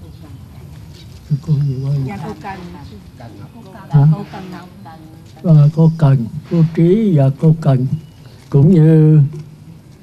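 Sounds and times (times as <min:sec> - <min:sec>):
elderly man speaking into microphone: 0:05.4 - 0:09.4.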